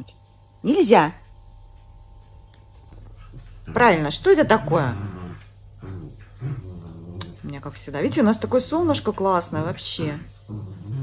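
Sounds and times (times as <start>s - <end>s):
small dogs play-fighting: 1.6s - 11.0s
dog growling: 3.1s - 11.0s.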